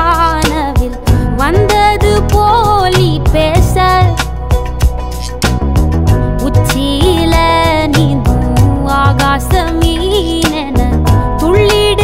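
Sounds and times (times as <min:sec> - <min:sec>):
woman singing: 0:00.0 - 0:04.5, 0:06.4 - 0:12.0
instrumental backing with drum beat: 0:00.0 - 0:12.0.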